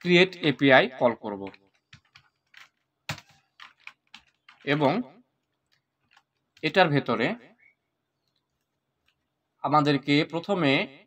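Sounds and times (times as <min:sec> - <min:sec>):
computer keyboard typing: 0:01.4 - 0:06.8.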